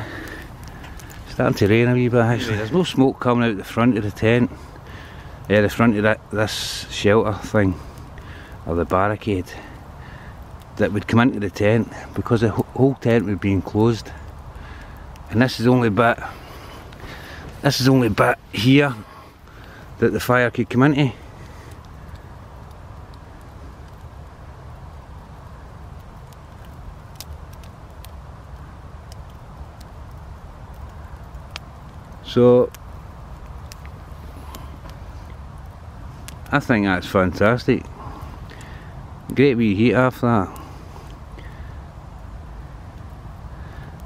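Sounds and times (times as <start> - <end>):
breeze rumbling on microphone: 0.0 - 44.0
stick fire crackling and popping: 0.0 - 44.0.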